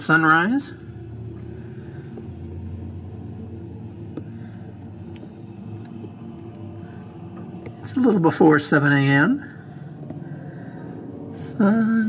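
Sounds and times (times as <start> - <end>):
distant traffic rumble: 0.0 - 12.0
faint hum: 0.0 - 12.0.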